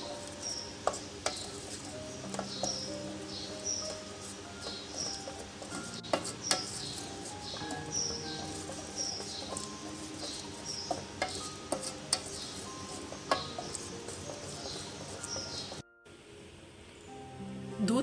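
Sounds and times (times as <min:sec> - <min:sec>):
spoon knocking on pot: 0:00.0 - 0:15.8
wooden spoon stirring thick mixture: 0:00.0 - 0:15.8.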